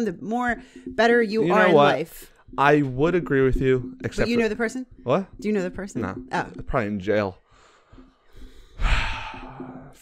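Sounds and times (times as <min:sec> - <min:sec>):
person sighing heavily: 0:08.8 - 0:09.9.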